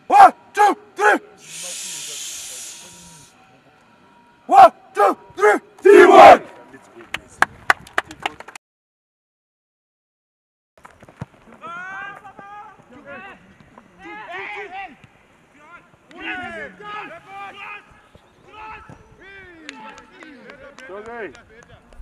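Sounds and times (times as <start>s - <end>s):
voices shouting and calling out: 0.0s - 3.6s, 4.4s - 6.8s, 11.6s - 21.4s.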